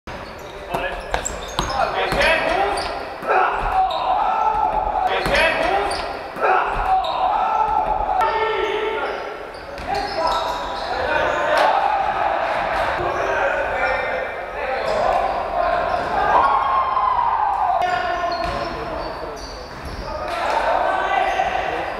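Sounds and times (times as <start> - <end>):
basketball bouncing on wooden court: 0.2 - 2.9
players calling out: 0.2 - 21.9.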